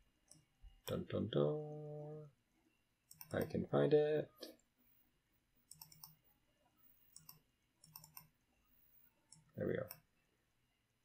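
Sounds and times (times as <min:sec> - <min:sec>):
computer mouse clicking: 0:03.1 - 0:03.5, 0:05.6 - 0:06.2, 0:06.8 - 0:10.1.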